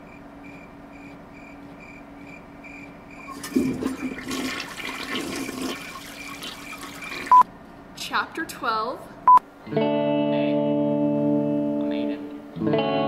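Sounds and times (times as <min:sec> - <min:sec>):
faint repeating beeps: 0:00.0 - 0:03.4, 0:07.3 - 0:07.5.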